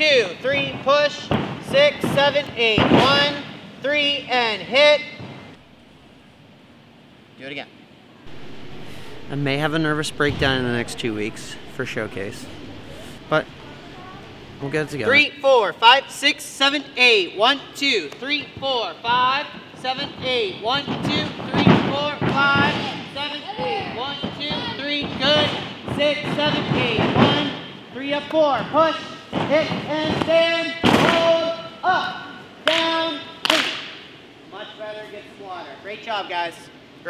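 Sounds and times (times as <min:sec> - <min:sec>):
faint background hiss: 0:00.0 - 0:24.4
coach shouting counts: 0:23.1 - 0:33.8.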